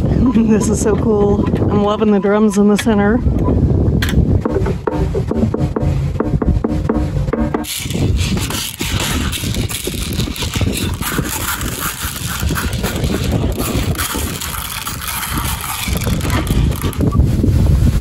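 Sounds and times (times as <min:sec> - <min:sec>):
plastic drums struck by hand: 0:04.4 - 0:07.8.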